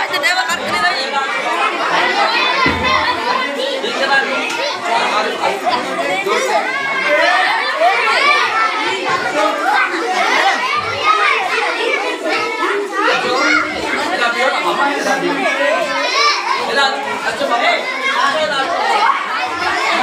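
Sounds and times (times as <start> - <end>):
crowd of children talking: 0.0 - 20.0.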